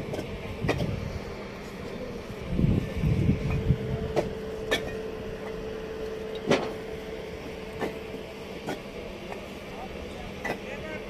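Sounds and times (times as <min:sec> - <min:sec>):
low rumbling: 0:00.0 - 0:10.0
steady low hum: 0:00.0 - 0:11.0.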